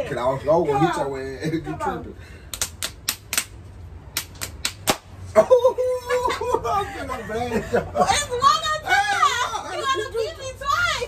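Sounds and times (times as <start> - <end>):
fists slapping into palms: 2.5 - 5.1.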